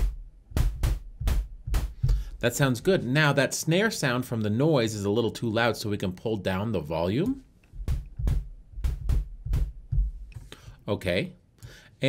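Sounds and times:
synthesized kick drum thumps: 0:00.0 - 0:03.0, 0:07.8 - 0:10.5.

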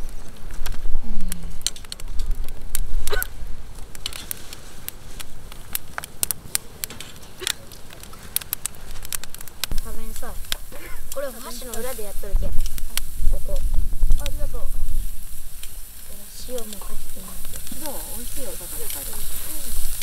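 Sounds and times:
firewood crackling and popping: 0:00.0 - 0:20.0
low rumble of flame: 0:00.0 - 0:20.0.

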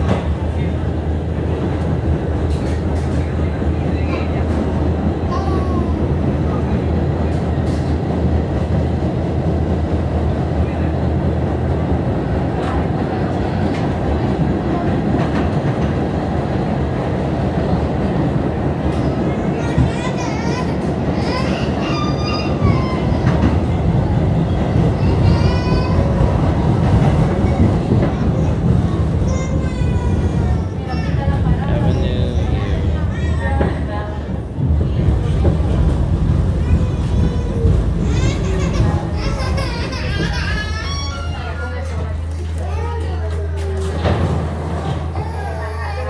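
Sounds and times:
rail clacks: 0:00.0 - 0:45.5
subway wheels rumbling on rails: 0:00.0 - 0:46.0.

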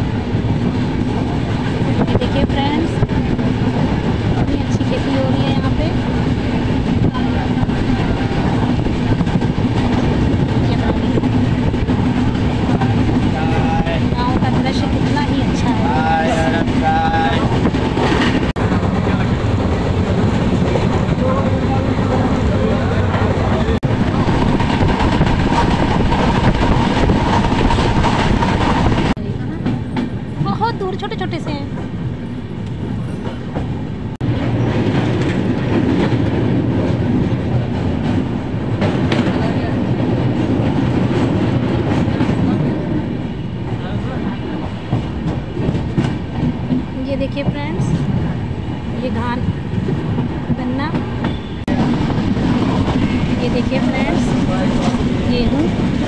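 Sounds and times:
train rumble inside carriage: 0:00.0 - 0:56.0
wheels clacking over rails: 0:00.4 - 0:32.0.

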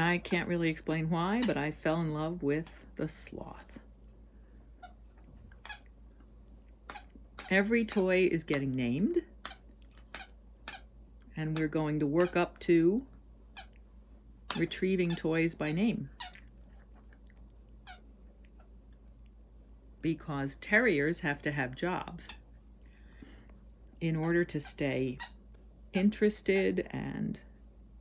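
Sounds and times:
chew toy squeaks: 0:06.9 - 0:07.5.

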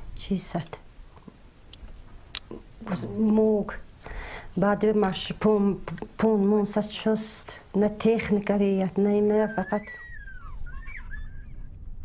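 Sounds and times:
bird calling: 0:09.4 - 0:11.8
wind rumble on microphone: 0:09.9 - 0:12.0.

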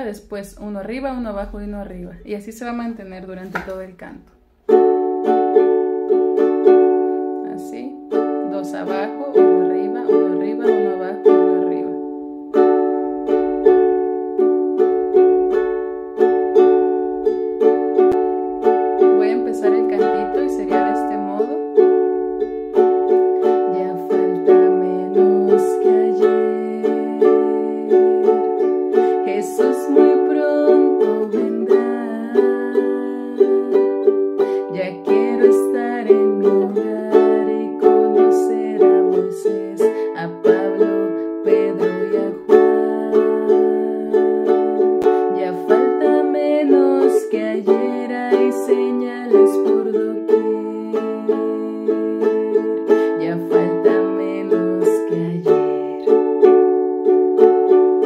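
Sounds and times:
ukulele strumming: 0:00.0 - 0:58.0.

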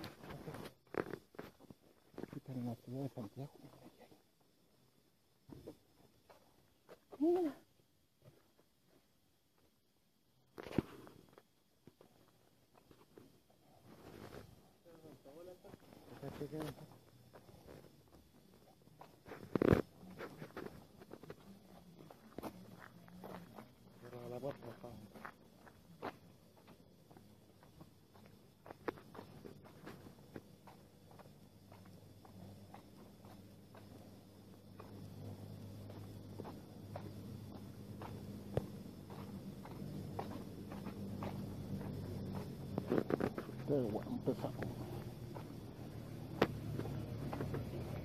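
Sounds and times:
steady low hum: 0:00.0 - 0:48.0
footsteps on wet pavement: 0:25.0 - 0:48.0.

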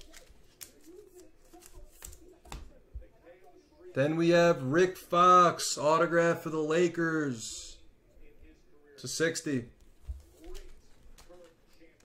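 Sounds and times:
cards clicking and tapping on table: 0:00.0 - 0:02.7.

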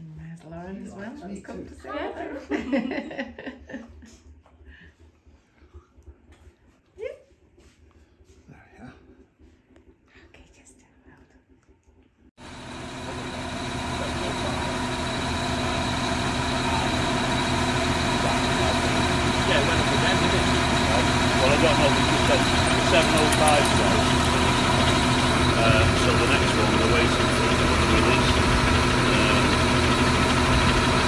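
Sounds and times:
tractor engine running: 0:12.4 - 0:31.0.

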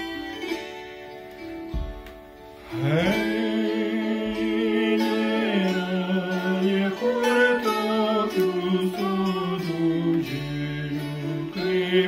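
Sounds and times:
man and woman singing: 0:00.0 - 0:00.8, 0:02.6 - 0:12.0
plucked zither strings ringing: 0:00.0 - 0:12.0.

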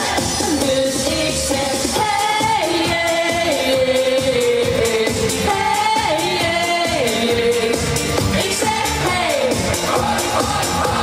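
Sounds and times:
woman singing into a microphone: 0:00.0 - 0:09.7
backing track with steady beat: 0:00.0 - 0:11.0.

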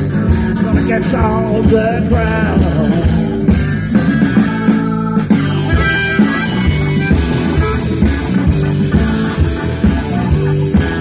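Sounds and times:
electric guitar: 0:00.0 - 0:11.0
live blues-rock band: 0:00.0 - 0:11.0.

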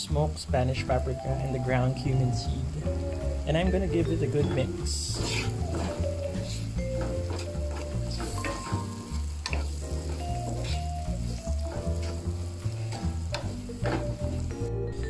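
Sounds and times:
background music with bass line: 0:00.0 - 0:15.0
food sizzling in a frying pan: 0:00.0 - 0:15.0
wooden spatula scraping pan: 0:05.1 - 0:12.2.

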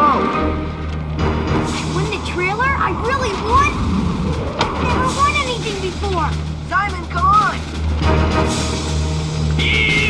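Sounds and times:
steady low rumble: 0:00.6 - 0:09.6
boy's excited voice: 0:01.8 - 0:07.6.

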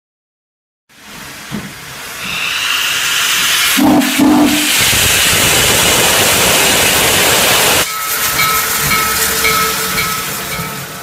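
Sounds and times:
steam locomotive venting steam: 0:00.9 - 0:11.0.

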